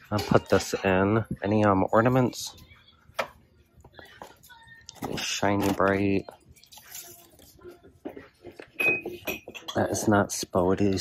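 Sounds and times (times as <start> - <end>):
glass ornaments clinking: 8.6 - 10.1.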